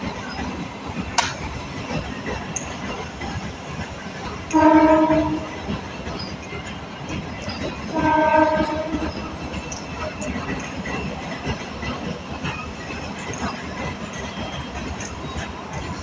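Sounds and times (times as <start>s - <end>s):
train coaches rumbling past: 0.0s - 16.0s
train horn blasts: 4.5s - 5.6s, 7.9s - 9.3s.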